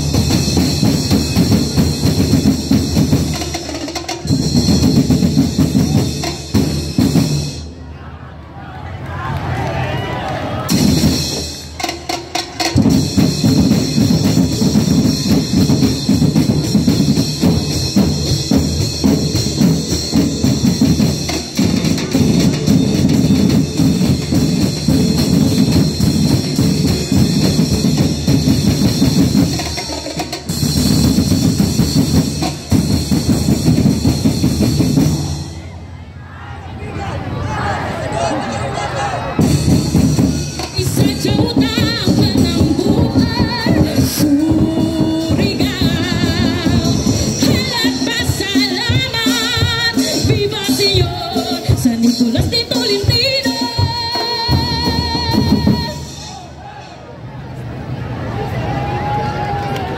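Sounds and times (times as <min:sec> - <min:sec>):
drums playing fast beat: 0:00.0 - 0:07.8, 0:10.7 - 0:35.8, 0:39.4 - 0:56.6.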